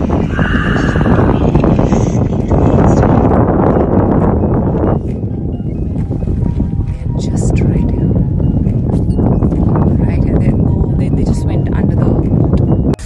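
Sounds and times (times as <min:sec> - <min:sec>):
motorboat rumble with wind and water: 0:00.0 - 0:13.0.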